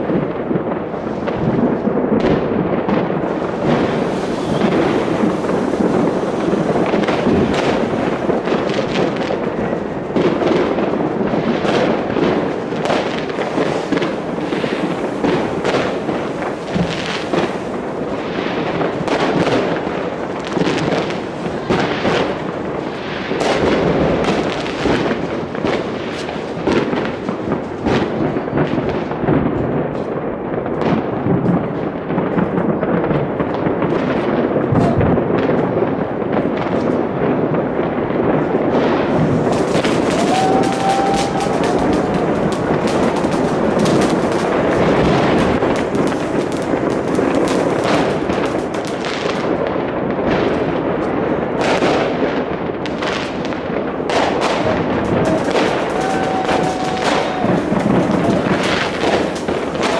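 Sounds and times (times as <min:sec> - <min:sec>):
fireworks bangs and crackles: 0:00.0 - 0:59.9.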